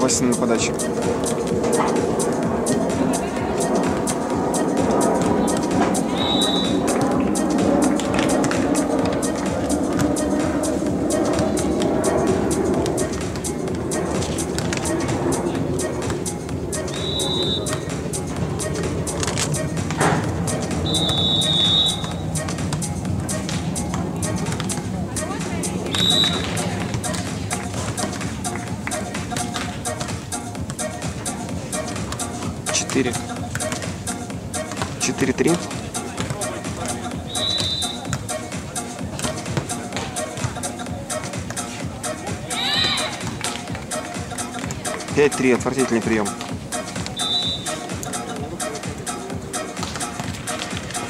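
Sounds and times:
background music: 0.0 - 51.0
referee's whistle blasts: 6.2 - 6.8, 16.9 - 17.8, 20.8 - 22.2, 25.9 - 26.5, 37.2 - 38.1, 47.2 - 47.8.

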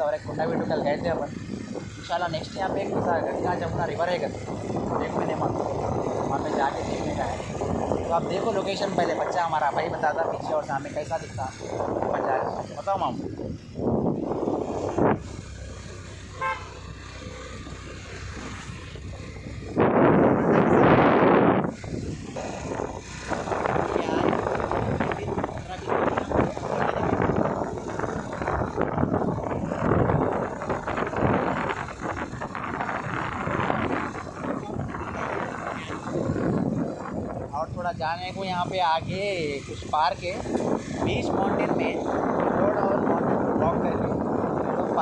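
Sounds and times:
vehicle running and road noise: 0.0 - 45.0
wind on microphone: 0.0 - 45.0
man's voice: 2.0 - 7.5, 37.5 - 44.2
vehicle horn toot: 16.3 - 16.8.

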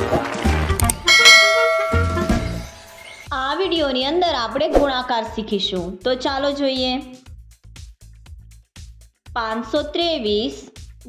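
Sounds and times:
bell chime ringing: 1.0 - 3.3.

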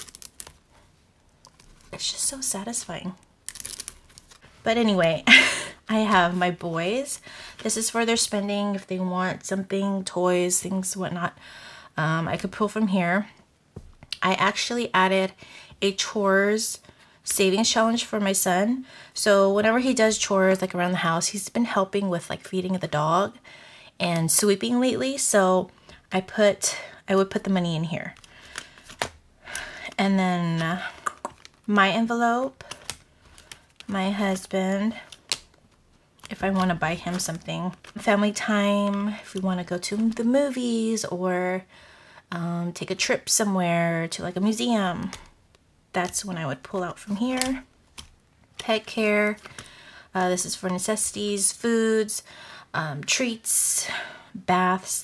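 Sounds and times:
plastic envelopes rustling: 0.0 - 5.3, 30.5 - 31.7, 32.6 - 40.2, 46.0 - 50.8.

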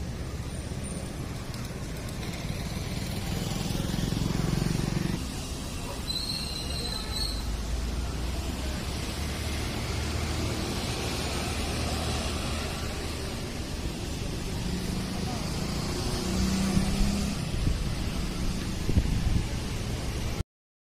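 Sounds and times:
road traffic rumble: 0.0 - 20.4.

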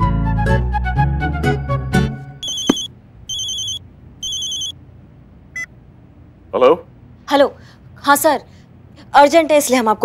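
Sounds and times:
phone ringing with trilling ringtone: 2.4 - 4.8.

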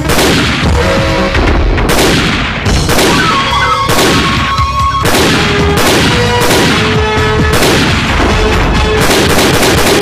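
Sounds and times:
loud sharp bangs: 0.0 - 10.0
background music with held tones: 2.7 - 9.0.

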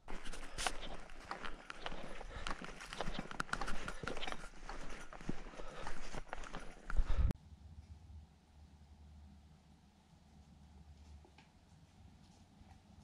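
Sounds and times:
footsteps crunching dry leaves: 0.0 - 7.2.

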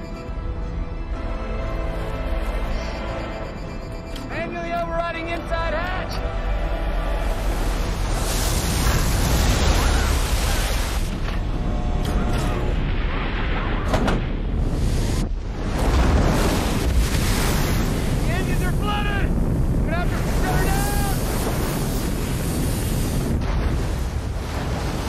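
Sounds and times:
wind: 0.0 - 25.0
deep rumble: 6.3 - 25.0.

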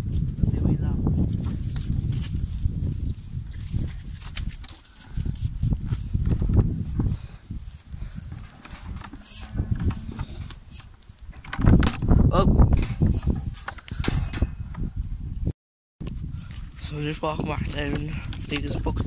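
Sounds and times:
wind: 0.0 - 19.0
sheep jostling and feeding: 1.1 - 11.6
handling rumble: 1.1 - 14.9.

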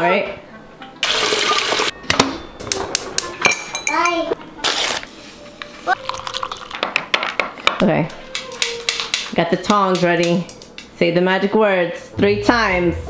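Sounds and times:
kitchenware clinking: 2.0 - 4.4.

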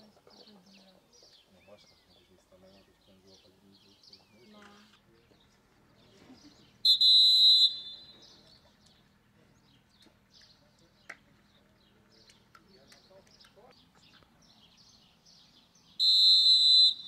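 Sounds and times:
referee's whistle blast: 6.8 - 8.2, 16.0 - 17.0.

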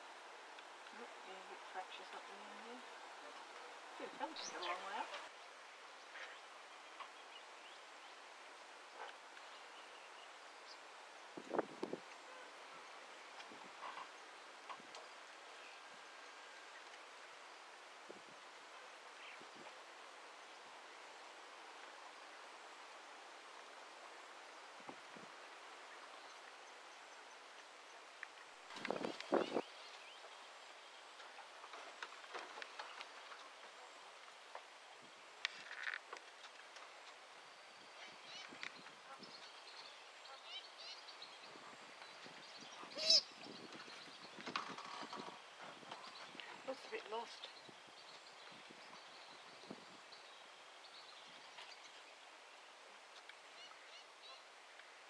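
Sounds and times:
faint steady hiss: 0.0 - 55.0
short outdoor sounds: 0.0 - 55.0.

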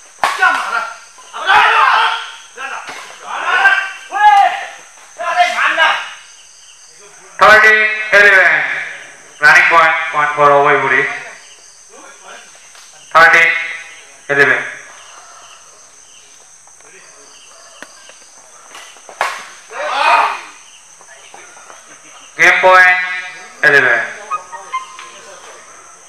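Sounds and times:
men shouting: 0.3 - 6.0, 19.6 - 20.7, 22.2 - 26.0.

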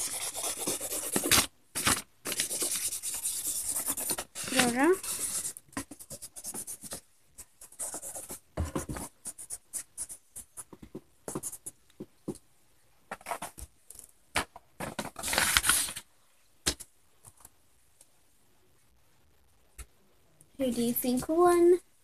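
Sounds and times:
marker scribbling on paper: 0.0 - 1.4, 2.3 - 10.7.

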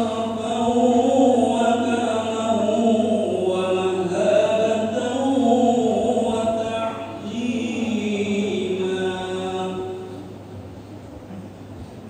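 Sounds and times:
person chanting: 0.0 - 10.2.

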